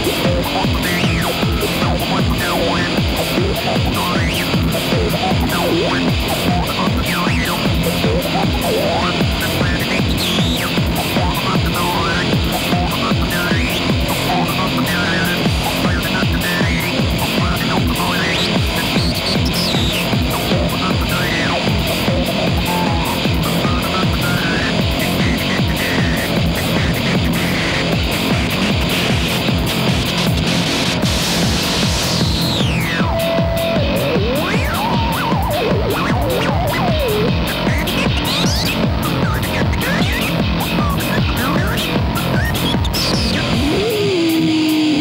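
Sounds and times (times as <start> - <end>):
drum kit fast beat: 0.0 - 45.0
loud live band music: 0.0 - 45.0.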